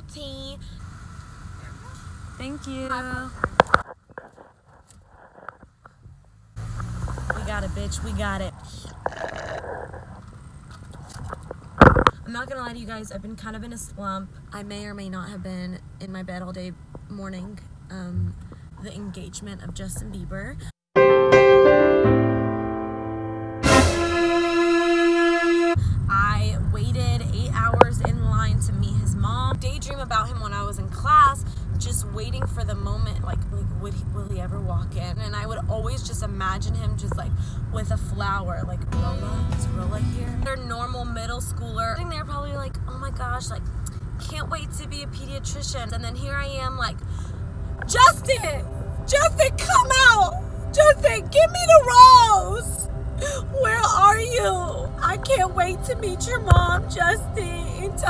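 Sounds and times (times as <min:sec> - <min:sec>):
woman speaking: 0:00.0 - 0:00.8, 0:02.4 - 0:03.4, 0:07.3 - 0:09.5, 0:12.2 - 0:20.8, 0:26.1 - 0:43.6, 0:44.2 - 0:47.2, 0:47.8 - 0:58.0
car cabin rumble: 0:05.1 - 0:20.6, 0:23.6 - 0:58.0
woman mock crying: 0:53.2 - 0:53.7.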